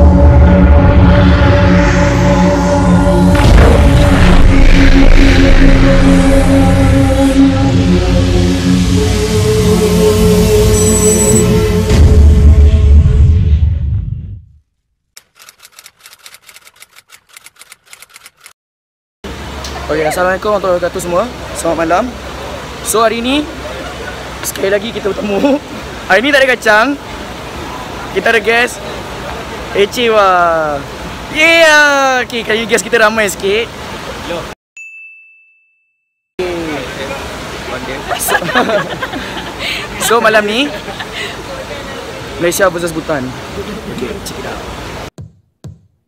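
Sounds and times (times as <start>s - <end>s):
bell-like chime ding: 10.7s - 11.5s, 34.8s - 36.2s.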